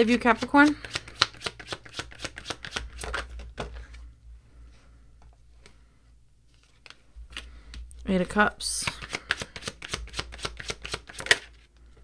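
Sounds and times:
cards being shuffled: 0:00.3 - 0:04.0, 0:06.5 - 0:07.8, 0:08.8 - 0:11.7.

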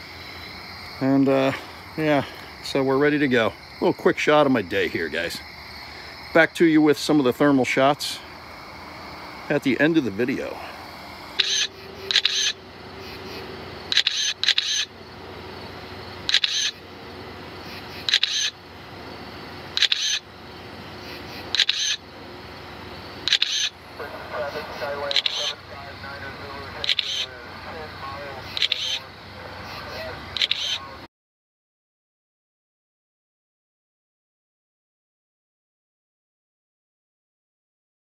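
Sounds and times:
remote controller alert beeps: 0:11.4 - 0:12.5.

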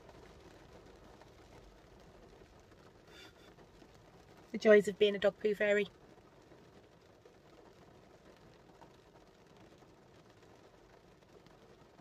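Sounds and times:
rain pattering on car: 0:00.0 - 0:12.0.

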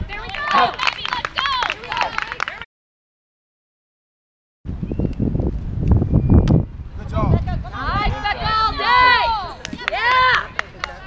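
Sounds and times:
wind buffeting microphone: 0:04.7 - 0:11.0.

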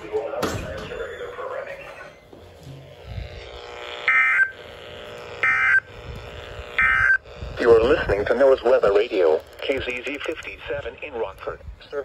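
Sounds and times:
warbling two-tone data bursts: 0:04.0 - 0:04.6, 0:05.4 - 0:06.0, 0:06.8 - 0:07.8.

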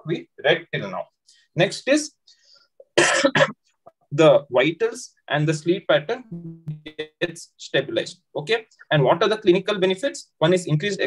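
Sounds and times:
man coughing: 0:03.0 - 0:03.6.

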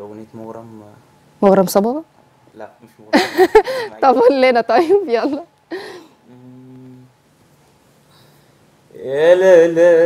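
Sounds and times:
man humming low note: 0:06.3 - 0:07.2.

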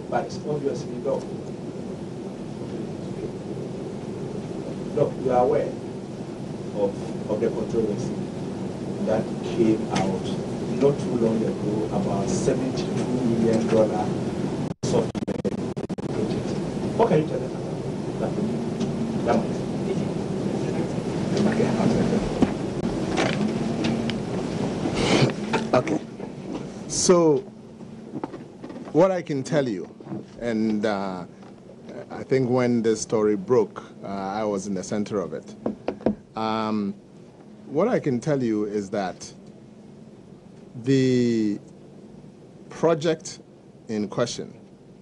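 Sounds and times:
crowded room noise: 0:00.0 - 0:31.9
low background noise: 0:00.0 - 0:45.0.

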